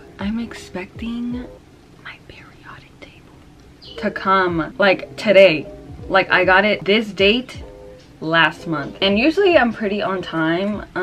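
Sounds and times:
woman whispering: 0:02.0 - 0:03.2.

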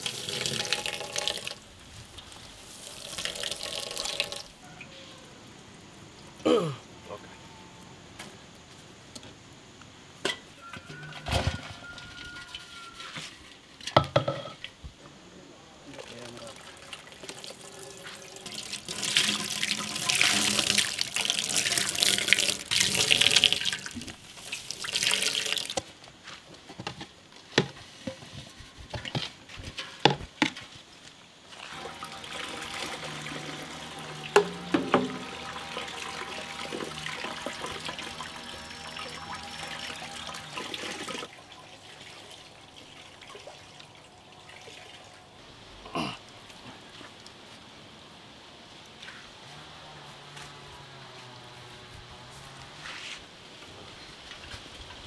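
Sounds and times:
liquid pouring into steel pot: 0:15.9 - 0:25.8, 0:31.6 - 0:45.2.

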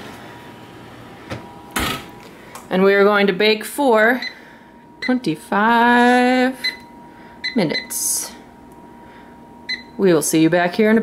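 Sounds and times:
oven door closing thump: 0:01.3 - 0:02.1.

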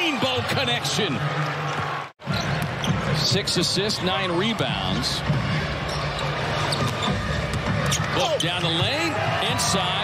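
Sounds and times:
basketball court sounds: 0:00.0 - 0:03.7, 0:04.9 - 0:09.8
crowd noise: 0:00.0 - 0:10.0.

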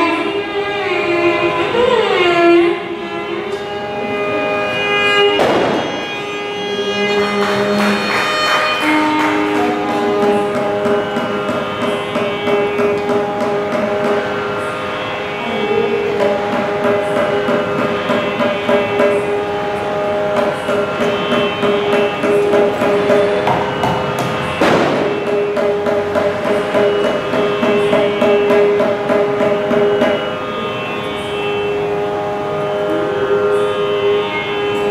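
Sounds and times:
steady drone: 0:00.0 - 0:34.9
mridangam drum strokes: 0:01.4 - 0:34.9.

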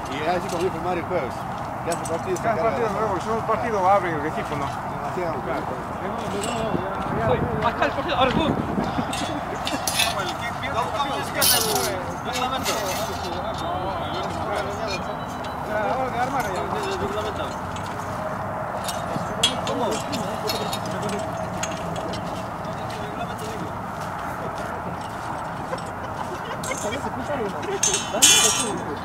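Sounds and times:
metal poles clinking: 0:00.0 - 0:04.8, 0:06.1 - 0:07.1, 0:08.8 - 0:29.0
men talking: 0:00.0 - 0:29.0
outdoor background noise: 0:00.0 - 0:29.0.

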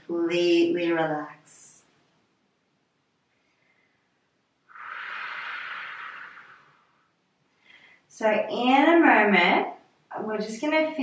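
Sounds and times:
person breathing out: 0:04.7 - 0:07.0.

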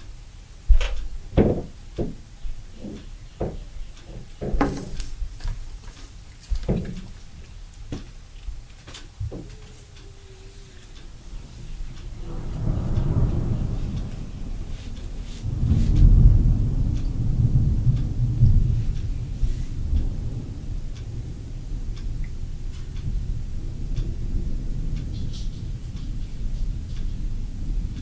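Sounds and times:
thunder rumbling: 0:09.1 - 0:28.0.

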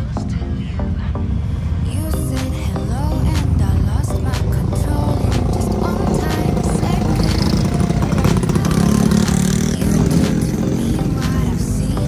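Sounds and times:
background music: 0:00.0 - 0:12.0
motorcycle engine running: 0:04.4 - 0:12.0.

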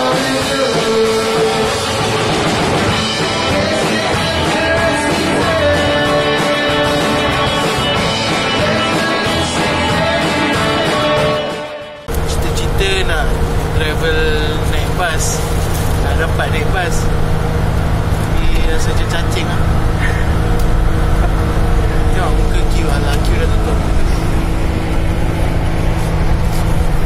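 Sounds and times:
minibus rumble on highway: 0:12.0 - 0:27.0
man talking: 0:12.2 - 0:15.4, 0:16.0 - 0:17.1, 0:18.3 - 0:19.7, 0:21.9 - 0:24.1.

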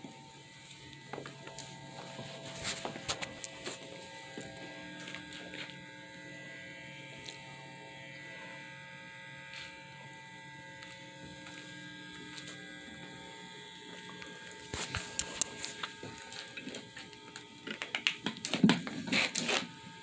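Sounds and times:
faint electrical hum: 0:00.0 - 0:20.0.

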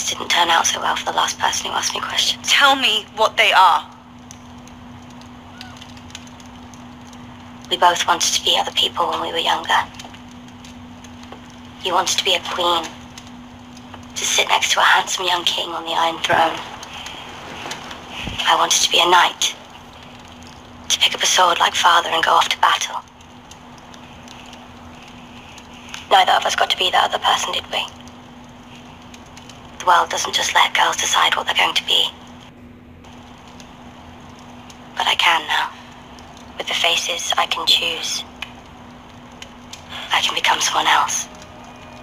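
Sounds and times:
background hum: 0:00.0 - 0:42.0
fire crackling in fireplace: 0:00.0 - 0:42.0
faint ticks: 0:04.2 - 0:07.8, 0:22.6 - 0:30.0, 0:38.3 - 0:42.0.

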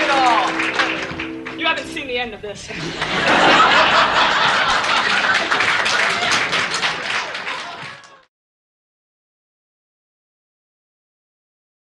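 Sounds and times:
audience applauding: 0:00.0 - 0:01.9, 0:02.8 - 0:08.3.

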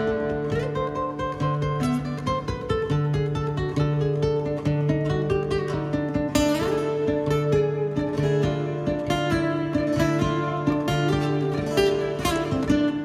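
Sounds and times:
acoustic guitars playing: 0:00.0 - 0:13.0
small plucked string instrument: 0:00.0 - 0:13.0.

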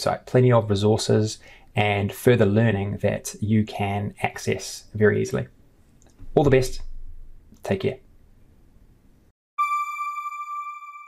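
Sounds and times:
electronic chime tone: 0:09.6 - 0:11.0.

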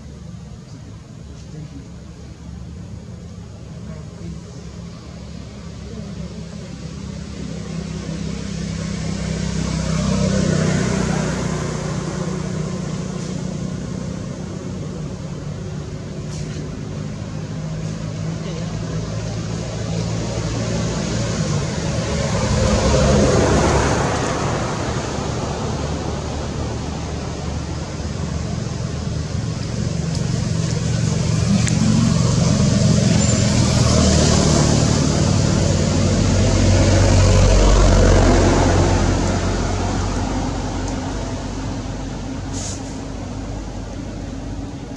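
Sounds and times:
vehicles passing: 0:00.0 - 0:44.9
indistinct voices: 0:29.5 - 0:35.0.

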